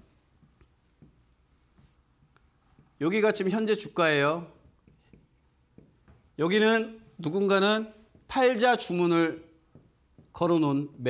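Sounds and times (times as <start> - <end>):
rubbing on display screen: 0.4 - 11.0.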